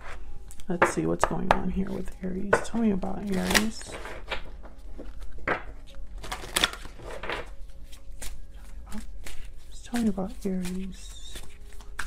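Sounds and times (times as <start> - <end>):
cards being shuffled: 3.2 - 12.0.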